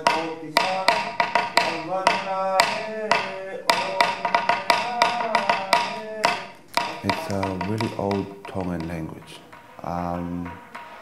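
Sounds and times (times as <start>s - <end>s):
group chanting in unison: 0.0s - 6.6s
sharp percussive strikes: 0.0s - 11.0s.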